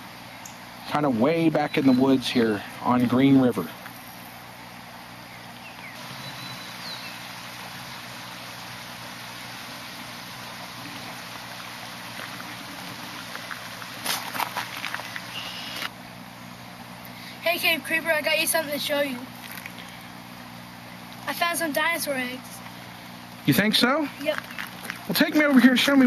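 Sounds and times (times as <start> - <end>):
low steady hum: 0.0 - 26.0
river water rushing over rocks: 6.0 - 15.9.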